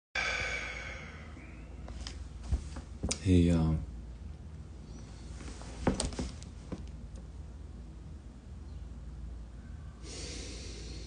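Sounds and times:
man's breathy exhale: 0.2s - 1.8s, 10.0s - 11.0s.

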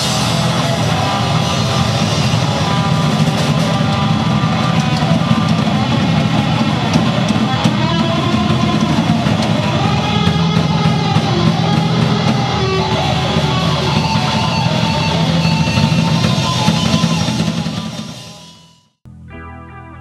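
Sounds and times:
drum and cymbal hits: 0.0s - 18.9s
electric guitars: 0.0s - 20.0s
rock band playing loud: 0.0s - 20.0s.

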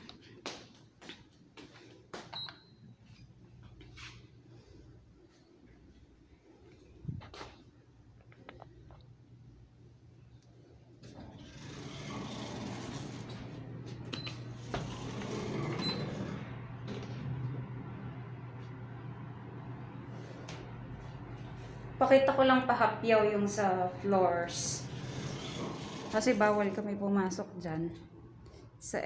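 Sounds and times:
elevator low hum: 1.6s - 28.5s.

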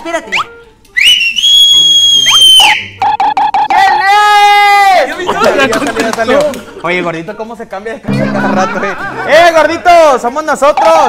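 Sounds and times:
person whistling loudly: 0.3s - 3.7s.

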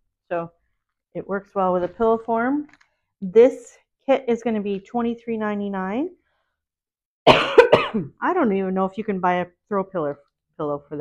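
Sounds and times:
woman coughing: 7.3s - 8.2s.

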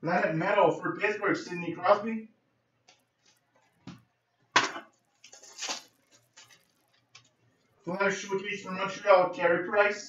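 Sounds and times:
cards shuffling rustle: 5.1s - 7.3s.

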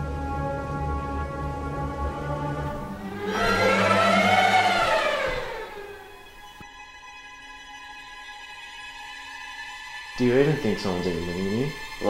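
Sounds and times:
low sustained drones: 0.0s - 6.6s
pitched whoosh: 2.6s - 6.6s.

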